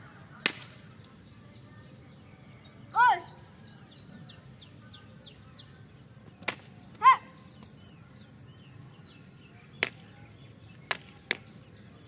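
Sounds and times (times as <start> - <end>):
faint high chirping: 1.0 - 12.0.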